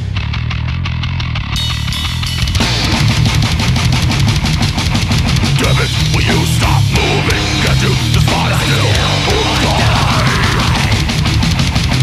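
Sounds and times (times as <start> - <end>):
distorted guitars chugging: 0.0 - 12.0
fast drumming: 1.8 - 12.0.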